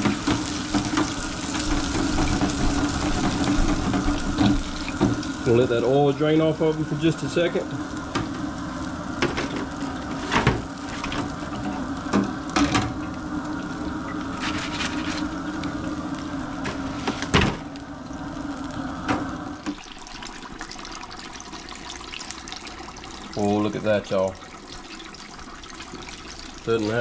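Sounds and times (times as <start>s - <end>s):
oil sizzling in deep fryer: 0.0s - 27.0s.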